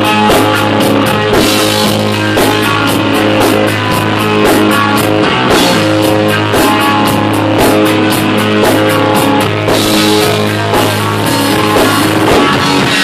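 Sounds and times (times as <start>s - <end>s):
drum kit beat: 0.0s - 13.0s
electric guitar: 0.0s - 13.0s.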